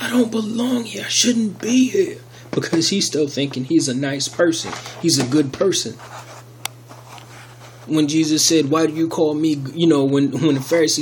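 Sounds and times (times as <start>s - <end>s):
man speaking: 0.0s - 6.0s, 7.9s - 11.0s.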